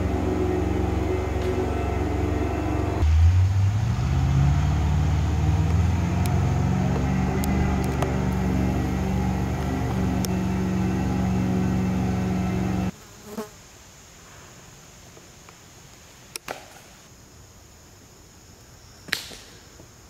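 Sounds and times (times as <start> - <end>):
loud low buzzing drone: 0.0 - 12.9.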